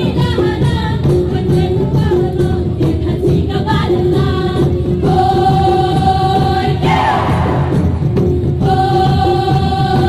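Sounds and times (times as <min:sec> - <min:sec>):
drums: 0:00.0 - 0:10.0
women's choir singing: 0:00.0 - 0:10.0.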